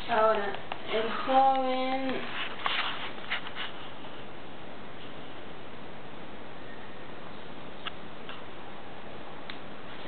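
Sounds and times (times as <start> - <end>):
recording hiss: 0.0 - 10.0.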